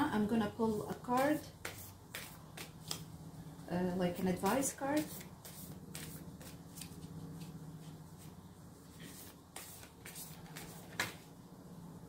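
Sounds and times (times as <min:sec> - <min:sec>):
cards being shuffled: 0:09.0 - 0:11.2.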